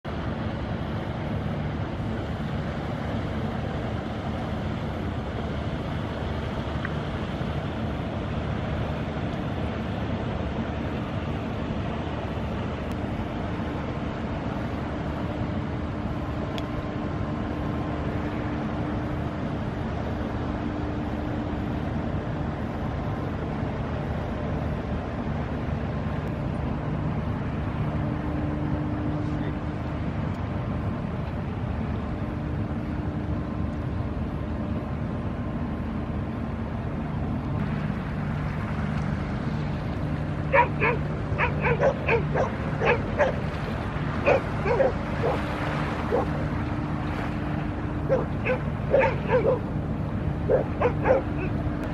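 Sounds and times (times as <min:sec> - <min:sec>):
rushing background noise: 0:00.0 - 0:51.9
ship engine rumble: 0:00.0 - 0:51.9
faint humming tone: 0:00.1 - 0:51.9.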